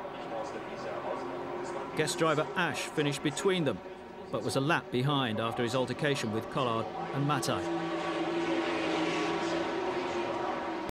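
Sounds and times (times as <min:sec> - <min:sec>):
race car engines running: 0:00.0 - 0:10.9
wide noise haze: 0:00.0 - 0:10.9.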